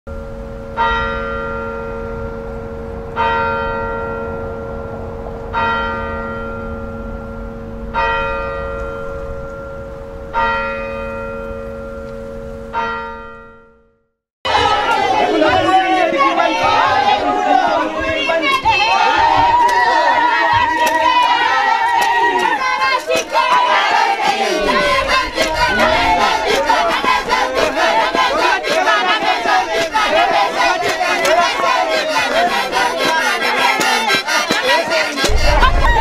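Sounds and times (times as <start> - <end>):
church bell tolling: 0.1 - 16.1
crowd talking and calling out: 14.5 - 36.0.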